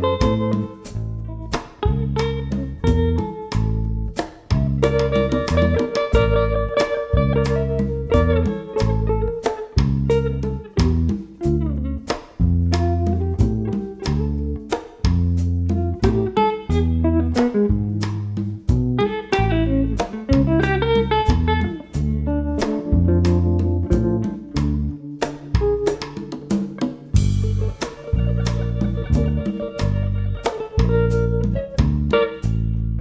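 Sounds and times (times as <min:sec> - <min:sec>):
electric guitar melody: 0:00.0 - 0:33.0
jazz trio playing: 0:00.0 - 0:33.0.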